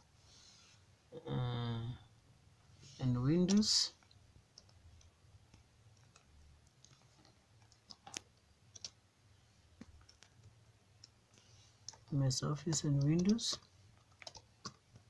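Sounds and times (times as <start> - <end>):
computer keyboard clicks: 3.4 - 9.0, 9.8 - 11.2, 11.8 - 15.0.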